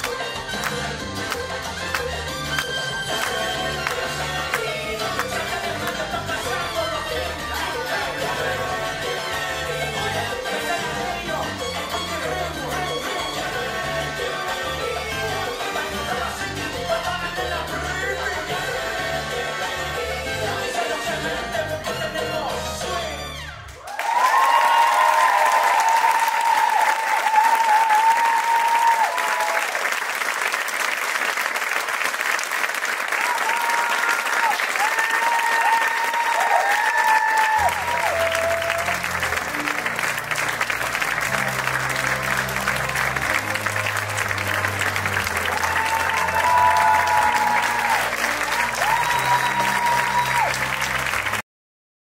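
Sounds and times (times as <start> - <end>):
audience applauding: 0.0 - 10.8, 23.7 - 51.4
music with bass line: 0.0 - 23.7, 37.6 - 51.4.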